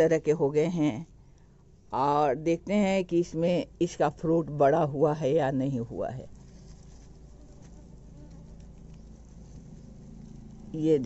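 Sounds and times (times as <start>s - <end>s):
faint low buzzing: 0.0s - 11.0s.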